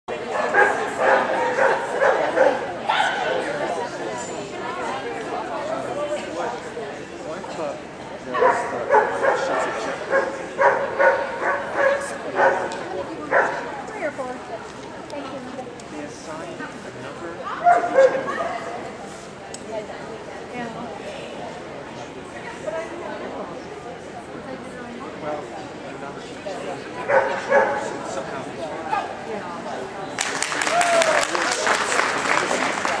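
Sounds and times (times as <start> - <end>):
voices in a large hall: 0.1 - 33.0
dog barking: 0.4 - 3.2, 8.4 - 12.7, 13.3 - 13.6, 27.1 - 27.9.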